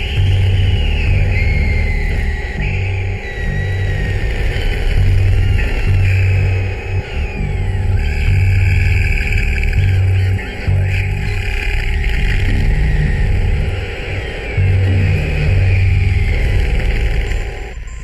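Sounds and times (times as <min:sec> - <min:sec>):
pulsing heavy bass line: 0:00.0 - 0:17.9
high gliding synth tones: 0:00.0 - 0:18.0.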